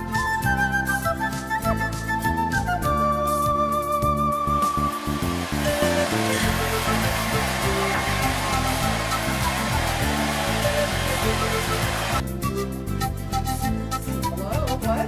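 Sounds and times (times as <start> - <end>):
background music: 0.0 - 15.0
hair dryer running: 4.6 - 12.2.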